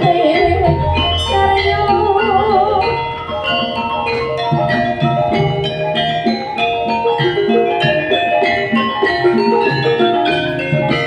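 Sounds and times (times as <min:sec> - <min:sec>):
gamelan metallophone and gong-chimes: 0:00.0 - 0:11.0.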